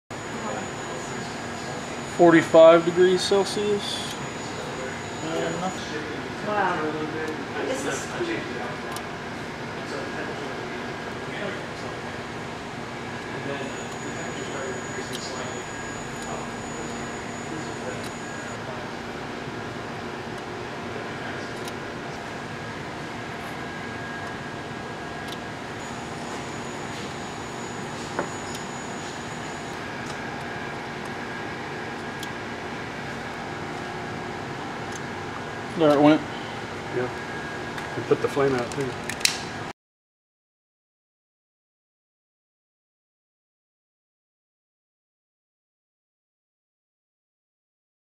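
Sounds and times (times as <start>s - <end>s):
equipment humming and hissing: 0.1s - 39.7s.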